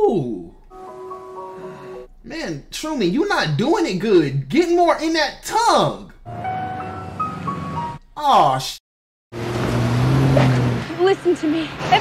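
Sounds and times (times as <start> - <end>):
car engine and tyres running: 5.6 - 8.0, 9.3 - 12.0.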